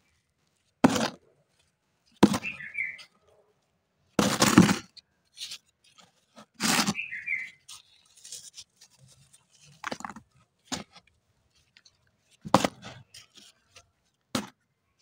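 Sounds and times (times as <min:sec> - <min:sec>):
dry clay soil crunching: 0:00.0 - 0:15.0.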